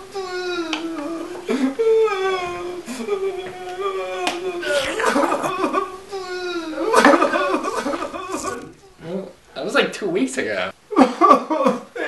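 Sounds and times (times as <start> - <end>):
person wailing: 0.0 - 9.3.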